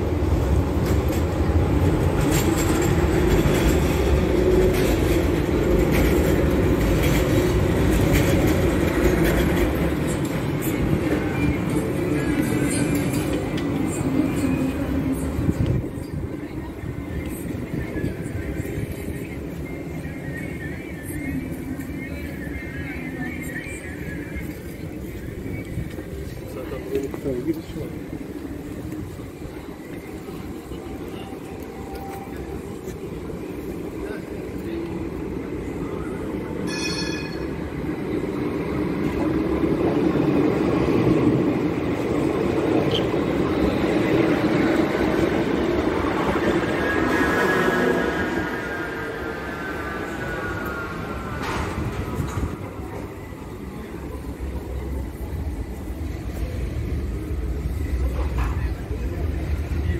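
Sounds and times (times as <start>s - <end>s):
electric trams rumbling on rails: 0.0s - 59.9s
street ambience: 0.0s - 59.9s.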